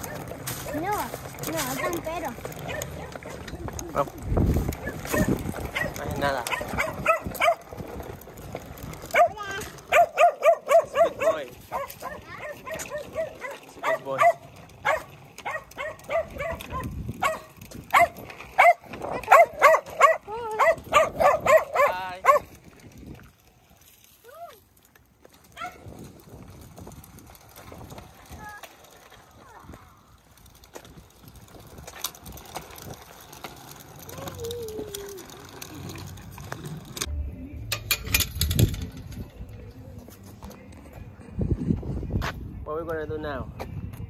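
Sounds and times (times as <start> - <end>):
dog barking: 1.7 - 3.4, 4.8 - 7.7, 9.1 - 22.5, 25.6 - 25.8.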